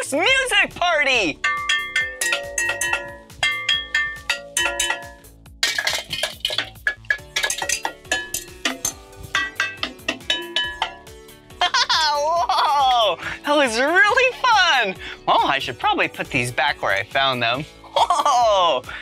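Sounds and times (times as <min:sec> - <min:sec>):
metal pots clanking: 0:01.4 - 0:11.4.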